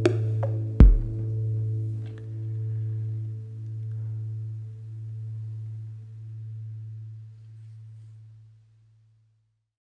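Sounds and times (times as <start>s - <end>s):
faint higher notes: 0.0s - 8.5s.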